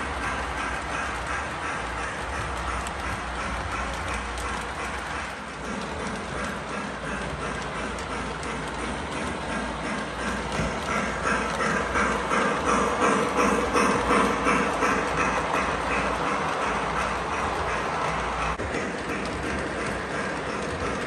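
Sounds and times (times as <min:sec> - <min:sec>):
model train wheels clattering: 0:00.0 - 0:21.0.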